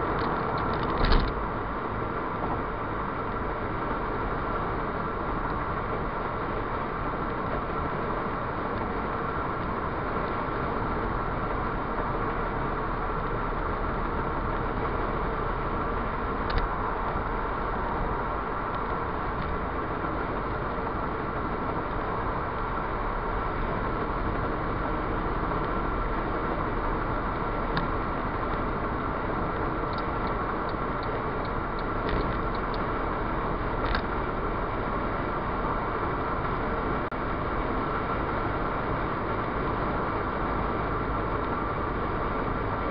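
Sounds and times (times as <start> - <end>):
car road and engine noise: 0.0 - 42.9.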